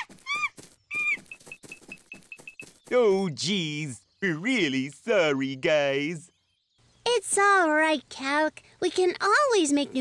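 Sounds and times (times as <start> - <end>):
cartoon monkeys calling: 0.0 - 1.3.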